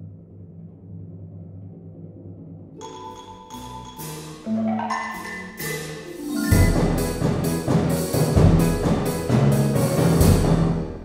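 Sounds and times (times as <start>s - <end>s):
low harp notes: 2.8s - 7.9s
timpani: 2.8s - 11.0s
snare drum: 3.9s - 10.8s
bass drum: 6.5s - 10.8s.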